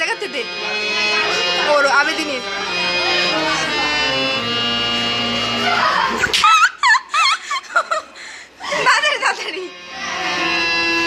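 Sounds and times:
laughter in quick bursts: 0:05.9 - 0:09.0.

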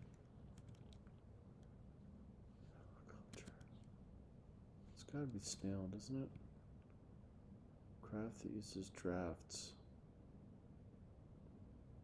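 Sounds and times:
faint whispered muttering: 0:02.6 - 0:03.9.

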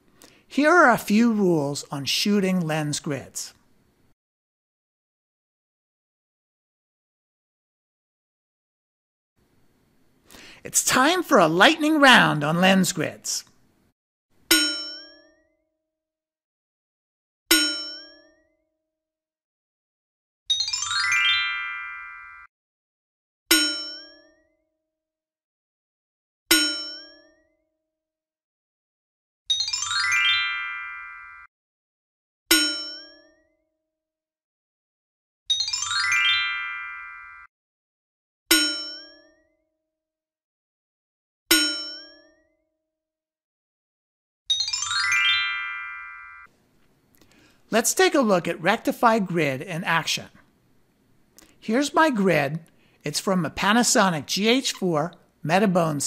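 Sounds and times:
bell-like dings: 0:14.5 - 0:15.5, 0:17.5 - 0:18.5, 0:23.5 - 0:24.5, 0:26.5 - 0:27.5, 0:32.5 - 0:33.5, 0:38.5 - 0:39.5, 0:41.5 - 0:42.5
rising run of chime tones: 0:20.5 - 0:22.5, 0:29.5 - 0:31.5, 0:35.5 - 0:37.5, 0:44.5 - 0:46.5.

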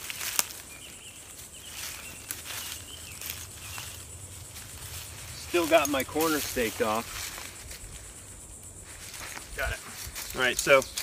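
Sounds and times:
rustling of dry leaves: 0:00.0 - 0:11.0.

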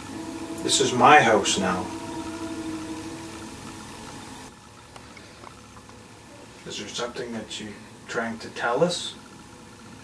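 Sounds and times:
steady hiss: 0:00.0 - 0:05.5
faint hum: 0:00.0 - 0:06.5.

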